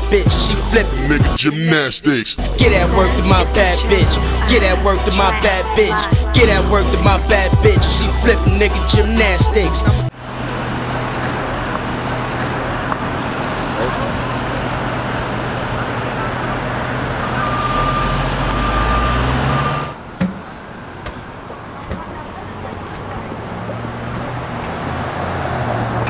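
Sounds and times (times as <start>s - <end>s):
city street traffic: 0.0s - 26.0s
vehicle engine humming nearby: 2.4s - 26.0s.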